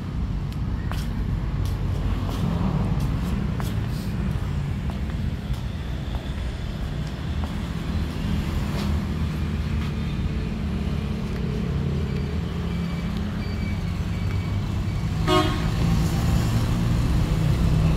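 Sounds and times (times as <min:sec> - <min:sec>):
vehicle horn toot: 0:15.2 - 0:15.8.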